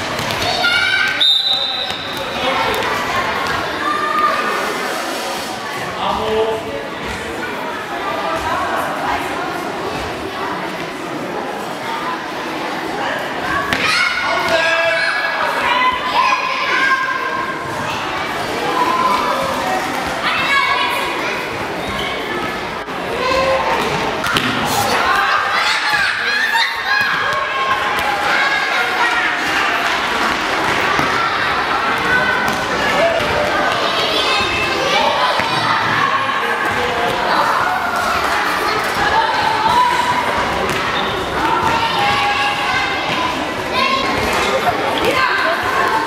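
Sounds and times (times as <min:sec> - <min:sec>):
children shouting echoing: 0:00.2 - 0:04.6, 0:13.5 - 0:19.6, 0:20.2 - 0:22.2, 0:23.1 - 0:46.0.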